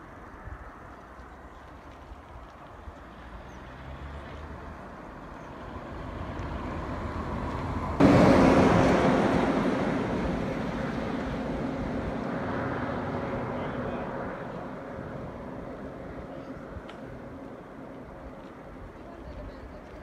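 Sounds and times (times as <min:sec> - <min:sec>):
motor vehicle passing at speed: 0:03.0 - 0:18.8.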